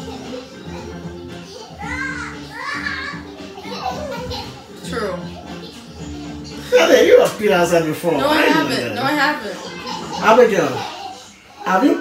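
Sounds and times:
background music with held notes: 0:00.0 - 0:12.0
child's voice: 0:01.8 - 0:03.1.

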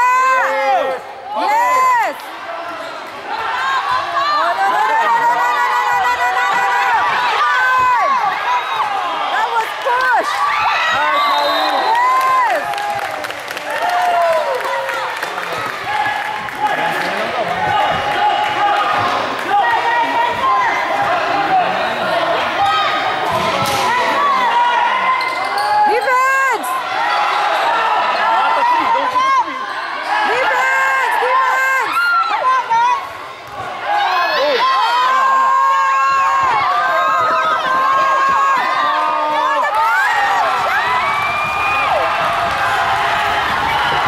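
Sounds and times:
people shouting: 0:00.0 - 0:12.8, 0:15.9 - 0:44.0
crowd voices: 0:00.0 - 0:44.0
sneakers squeaking on gym floor: 0:25.2 - 0:25.9.

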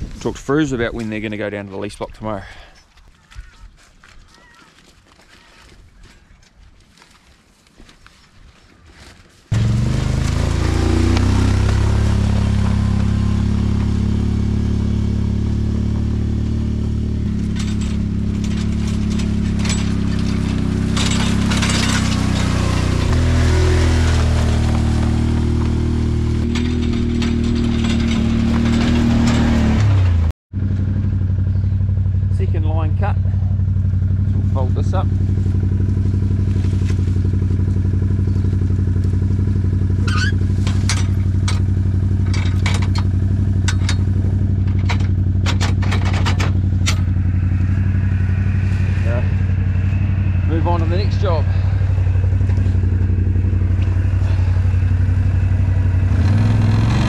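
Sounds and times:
quad bike engine idling: 0:09.5 - 0:57.0
quad bike engine revving: 0:09.5 - 0:57.0
sharp knocks and clinks: 0:17.3 - 0:23.3.

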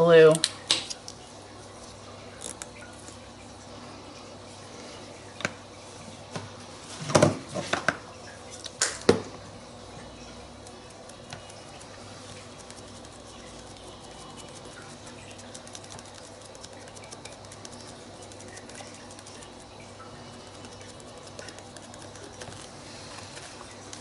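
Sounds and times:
sponge dabbing on paper: 0:10.3 - 0:24.0.

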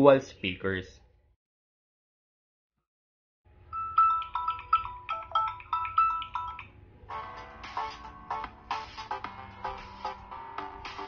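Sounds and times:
ringtone melody through speakers: 0:03.6 - 0:11.0.

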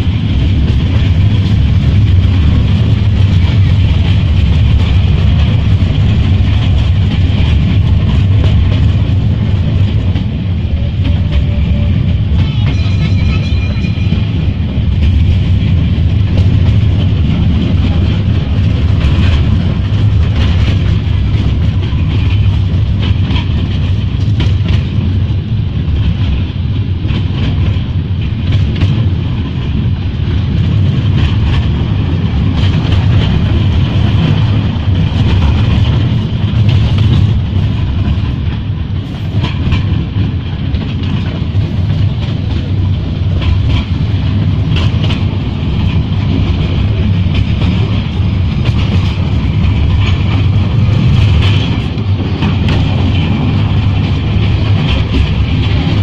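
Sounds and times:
train rumbling: 0:00.0 - 0:56.0
wheels clicking and knocking: 0:00.0 - 0:56.0.

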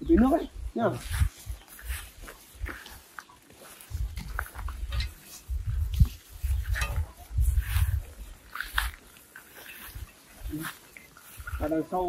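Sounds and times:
footsteps on dirt path: 0:00.0 - 0:12.0.

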